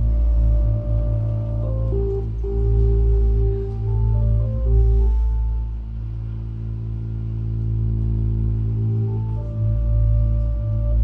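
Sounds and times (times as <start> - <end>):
low bass tone: 0.0 - 11.0
sustained synthesizer chord: 0.0 - 11.0.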